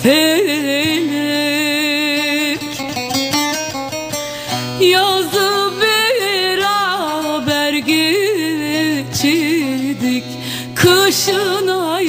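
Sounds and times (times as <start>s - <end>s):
plucked string instrument: 0.0s - 12.0s.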